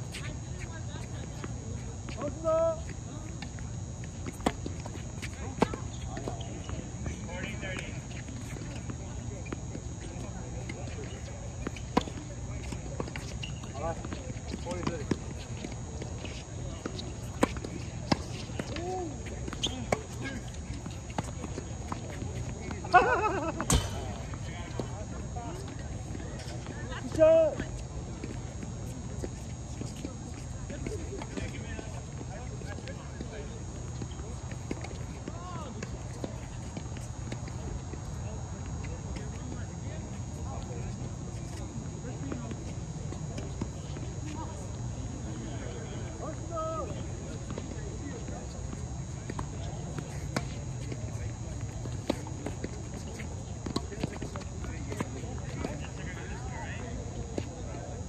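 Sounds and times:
faint voices: 0.0 - 58.0.

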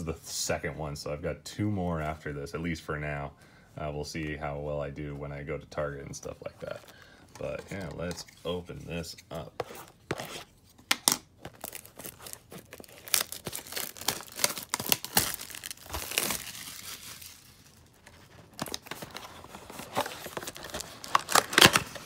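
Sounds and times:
plastic shrink-wrap tearing: 11.5 - 19.2, 19.9 - 22.0.

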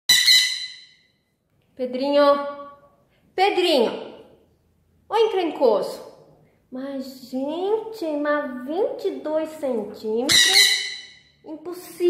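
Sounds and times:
parrot squawking: 0.1 - 1.0, 10.2 - 11.3.

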